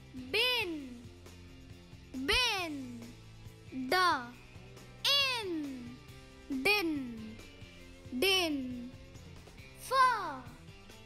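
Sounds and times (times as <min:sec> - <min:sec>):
soft background music: 0:00.0 - 0:11.0
child-like voice sounding syllables: 0:00.2 - 0:01.0, 0:02.2 - 0:03.0, 0:03.8 - 0:04.4, 0:05.1 - 0:07.2, 0:08.2 - 0:08.9.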